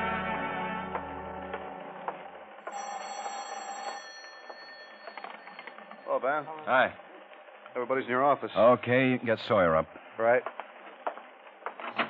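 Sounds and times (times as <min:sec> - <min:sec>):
orchestral music: 0:00.0 - 0:02.1.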